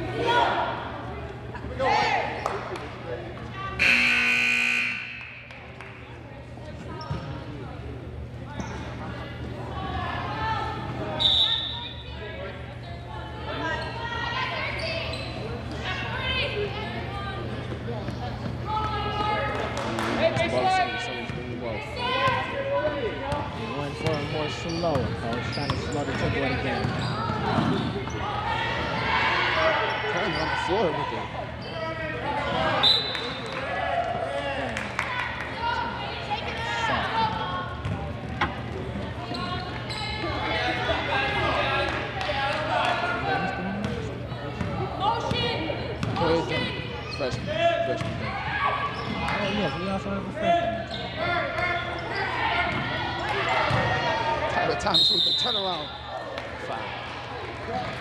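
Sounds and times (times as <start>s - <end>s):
people talking and calling out: 0.0s - 58.0s
shoe squeaks: 14.8s - 15.6s, 24.1s - 28.3s, 39.3s - 40.4s.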